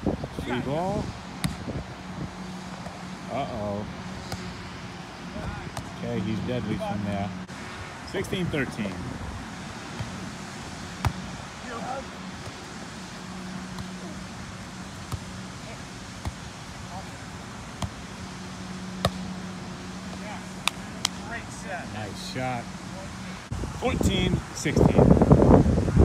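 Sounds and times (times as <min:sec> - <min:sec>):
volleyball being struck: 0:18.9 - 0:19.4.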